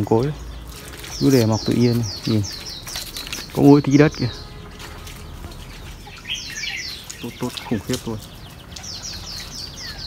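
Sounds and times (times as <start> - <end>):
faint background noise: 0.0 - 10.0
small birds chirping: 0.0 - 10.0.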